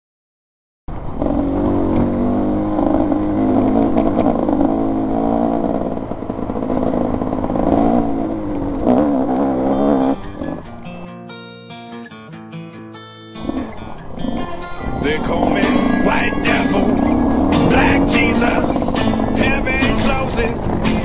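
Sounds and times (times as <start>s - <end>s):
motorcycle engine revving: 0.9s - 11.0s, 13.4s - 21.0s.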